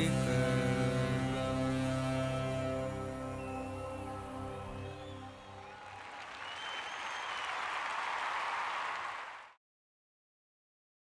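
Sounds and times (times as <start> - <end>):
audience applauding: 4.5 - 9.6.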